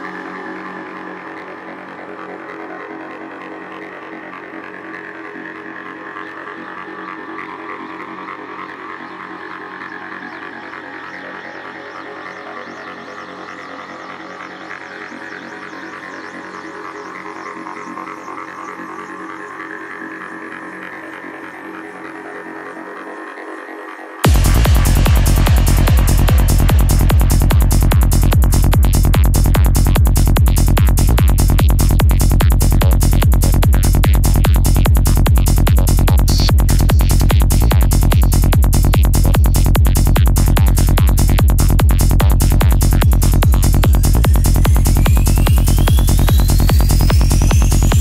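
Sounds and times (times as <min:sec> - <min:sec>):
droning synth: 0:00.0 - 0:48.0
high synth sweeps: 0:21.2 - 0:48.0.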